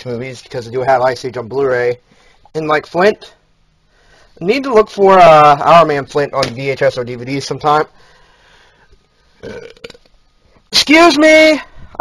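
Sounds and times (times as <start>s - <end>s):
man burping: 9.4s - 10.1s.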